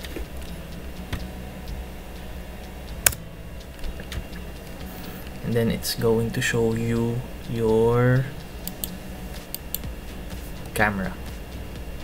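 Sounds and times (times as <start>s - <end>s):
low steady hum: 0.0s - 12.0s
keyboard and mouse clicks: 8.6s - 9.9s.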